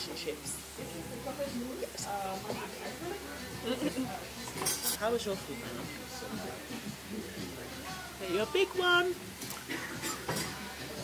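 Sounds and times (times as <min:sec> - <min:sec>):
cutlery clinking against plates: 0:04.4 - 0:05.1, 0:09.4 - 0:10.7.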